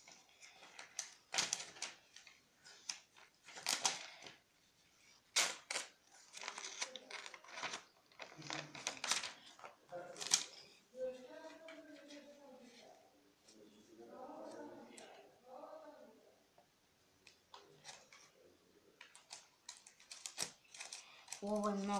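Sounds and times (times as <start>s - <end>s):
paper rustling: 0.0s - 15.2s, 17.4s - 21.9s
scissors snipping paper: 19.0s - 21.9s.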